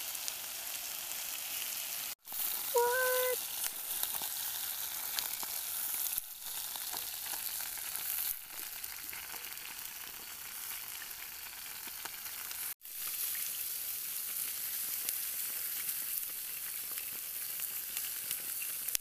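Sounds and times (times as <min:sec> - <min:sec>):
vegetables sizzling on grill pan: 0:00.0 - 0:19.0.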